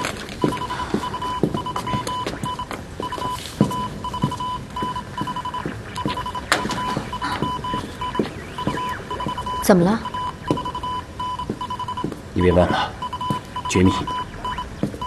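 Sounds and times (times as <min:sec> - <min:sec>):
morse code beeps: 0:00.0 - 0:15.0
scattered clicks and knocks: 0:03.6 - 0:09.5.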